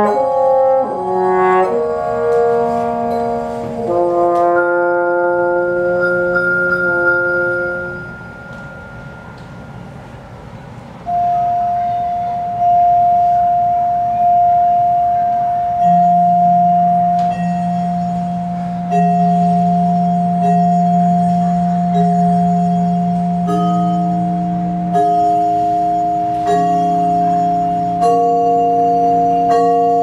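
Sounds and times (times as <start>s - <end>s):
held ensemble chord: 0.0s - 10.1s, 11.1s - 30.0s
vibraphone notes ringing: 0.0s - 10.2s, 11.1s - 30.0s.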